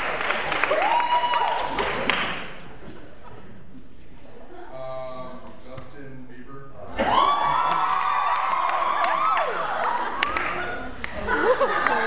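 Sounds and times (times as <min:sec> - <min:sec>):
audience cheering and screaming: 0:00.0 - 0:02.0, 0:07.0 - 0:12.0.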